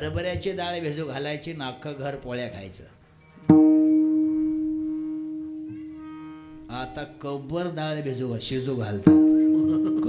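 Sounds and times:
ringing musical note: 3.2s - 7.3s.

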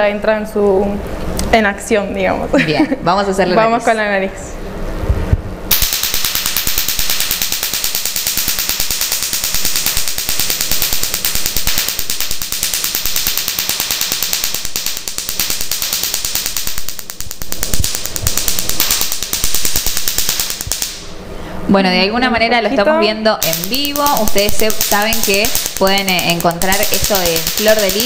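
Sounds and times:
laser crackling snaps: 5.7s - 21.1s, 23.4s - 28.0s.

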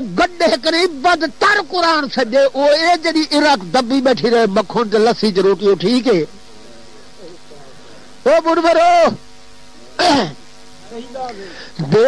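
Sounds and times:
man preaching: 0.0s - 9.3s, 10.0s - 12.0s
steady buzzing hum: 0.0s - 12.0s.

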